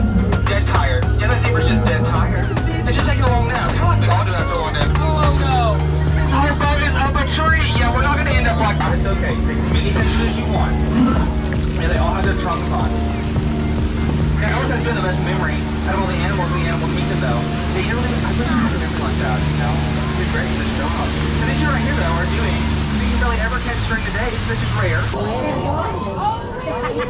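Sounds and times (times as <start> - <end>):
boat engine droning: 0.0 - 27.0
voices: 0.0 - 27.0.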